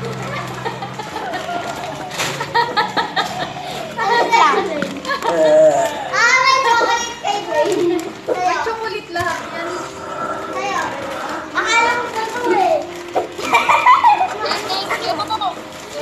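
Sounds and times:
children laughing: 0.0 - 8.8, 10.6 - 16.0
children's excited voices: 3.0 - 16.0.

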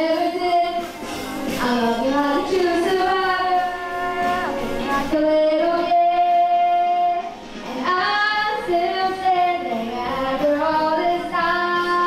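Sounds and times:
boy singing into a microphone: 0.0 - 12.0.

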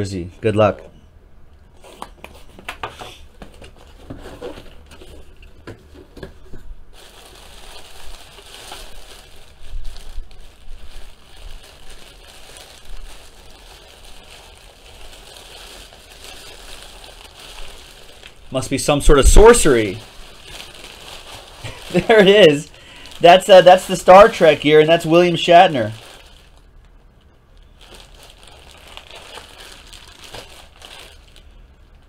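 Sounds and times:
plastic wrapping crinkling: 6.9 - 32.0.

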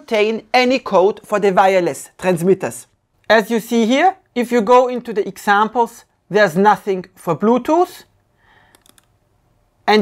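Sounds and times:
faint background hiss: 0.0 - 10.0
computer mouse clicks: 8.6 - 9.2.

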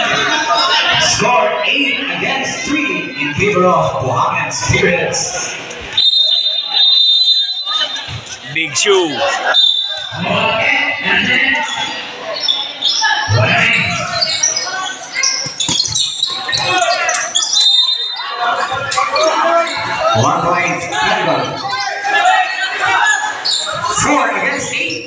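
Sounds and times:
voices of people: 0.0 - 25.0.

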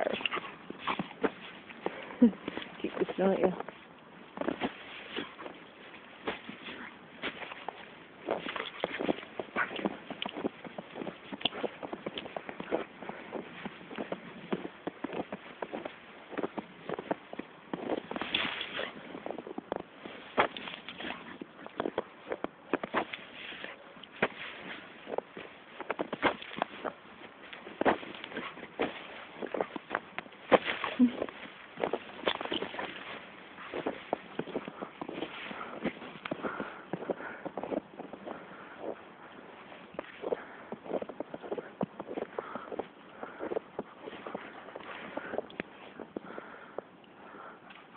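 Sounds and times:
footsteps crunching through snow: 0.0 - 46.8.

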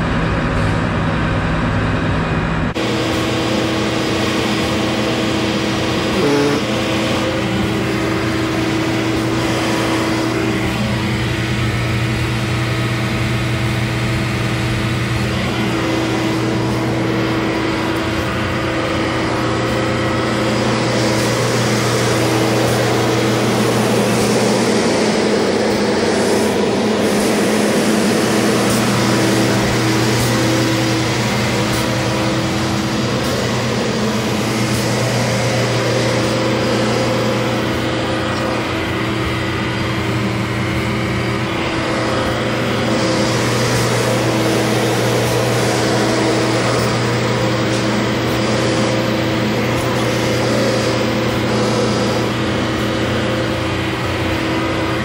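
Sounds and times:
heavy machine engine running: 0.0 - 55.0.

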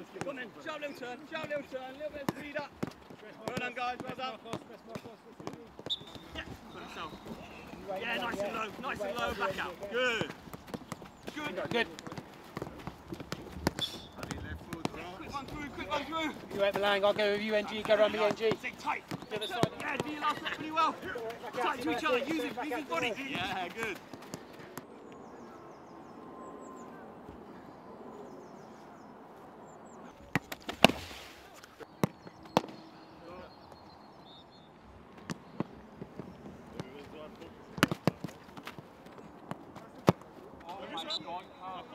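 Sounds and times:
footballs being kicked: 2.2 - 24.9, 30.2 - 32.8, 35.2 - 40.8
football being kicked: 10.1 - 15.6, 31.9 - 32.8
faint bird chirps: 25.0 - 30.3.

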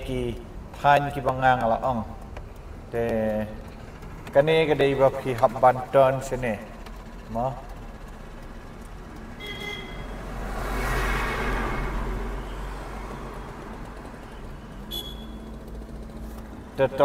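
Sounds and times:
truck passing: 1.7 - 17.0.

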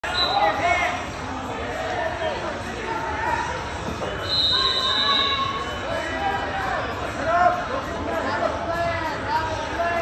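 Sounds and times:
voices calling out and talking: 0.0 - 10.0.

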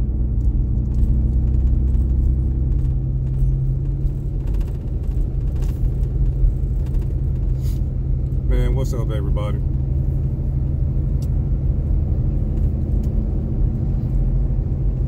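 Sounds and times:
car engine and road drone: 0.0 - 15.0.

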